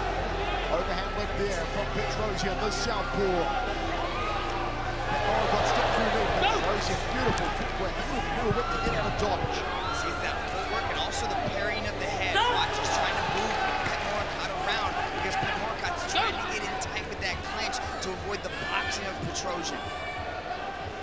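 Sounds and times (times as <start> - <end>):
crowd shouting: 0.0 - 21.0
steady crowd hubbub: 0.0 - 21.0.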